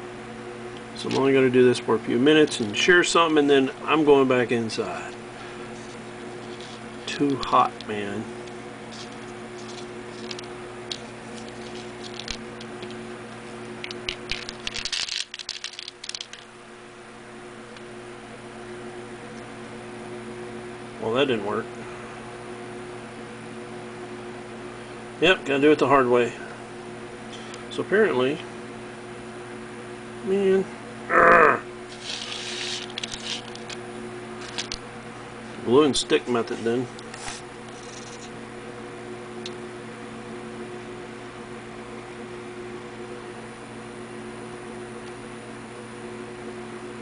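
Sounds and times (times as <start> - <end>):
steady electrical hum: 0.0 - 47.0
foil tubing rustling and clicking: 8.9 - 13.0, 13.8 - 16.5, 31.9 - 33.8
tubing pieces clattering: 14.3 - 16.5.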